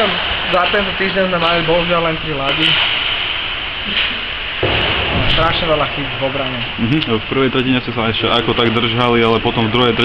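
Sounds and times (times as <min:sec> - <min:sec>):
steady hiss: 0:00.0 - 0:10.0
low rumble: 0:02.9 - 0:08.0.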